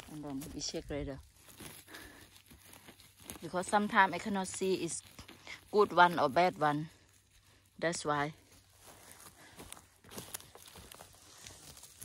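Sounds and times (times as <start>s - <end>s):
dry grass rustling: 0.0s - 12.0s.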